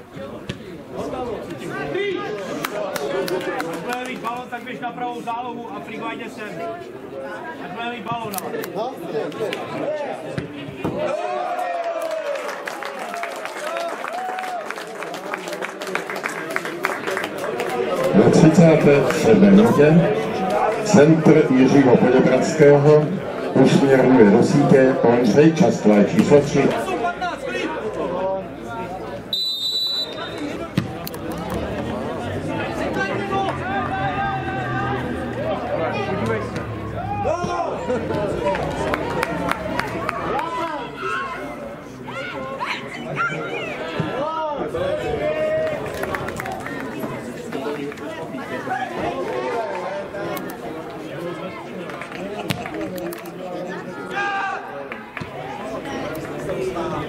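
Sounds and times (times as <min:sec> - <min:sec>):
scattered clapping: 0:02.4 - 0:04.5, 0:11.9 - 0:19.7, 0:38.1 - 0:40.5, 0:45.6 - 0:48.2, 0:51.8 - 0:53.4
men calling out and talking: 0:17.5 - 0:46.0
referee's whistle blast: 0:29.3 - 0:30.5
people shouting: 0:36.9 - 0:38.0.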